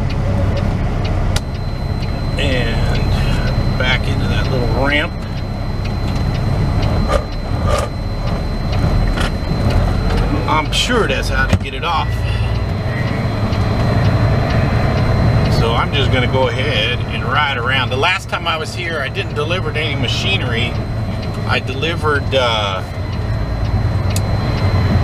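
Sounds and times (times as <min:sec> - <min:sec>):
diesel truck engine drone: 0:00.0 - 0:25.0.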